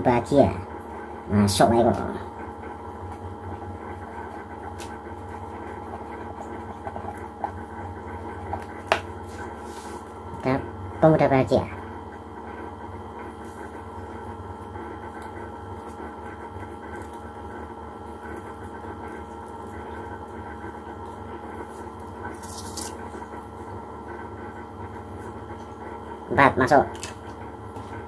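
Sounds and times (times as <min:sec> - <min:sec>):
steady background hum: 0:00.0 - 0:28.0.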